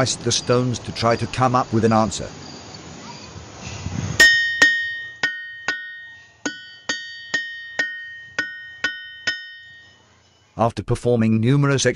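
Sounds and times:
hammer striking ringing rock: 0:04.2 - 0:10.0.

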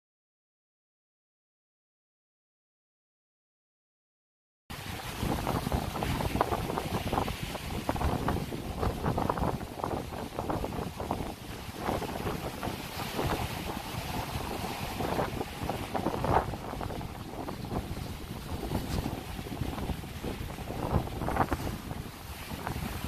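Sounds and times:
surf breaking on rocks: 0:04.7 - 0:23.0
wind buffeting microphone: 0:04.7 - 0:23.0.

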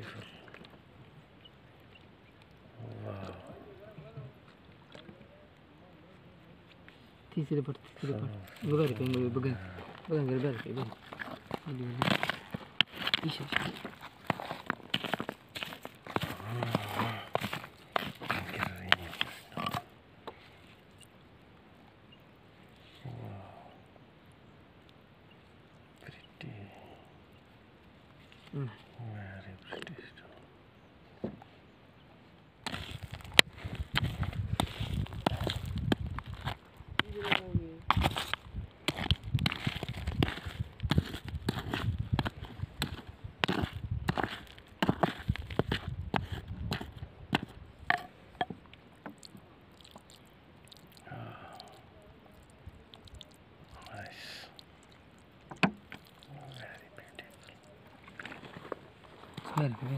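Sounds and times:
pebbles and grit rattling: 0:08.6 - 0:19.9, 0:32.6 - 0:48.6
hammer striking rocky soil: 0:32.6 - 0:48.6.

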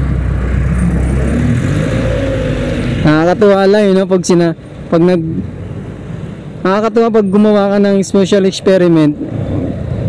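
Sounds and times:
wind and road noise: 0:00.0 - 0:10.0.

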